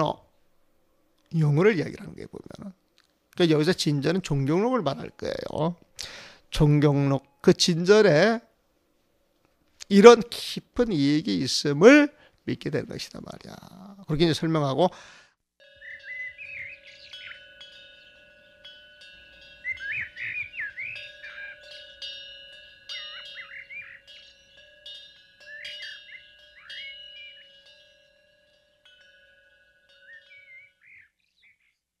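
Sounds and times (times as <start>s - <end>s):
ringing chime strikes: 15.6s - 30.8s
steady held tone: 15.6s - 31.2s
birds chirping: 15.6s - 32.0s.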